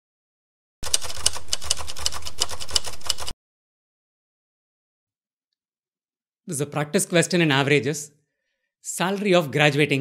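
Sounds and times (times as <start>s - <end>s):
typewriter key clatter: 0.8s - 3.3s.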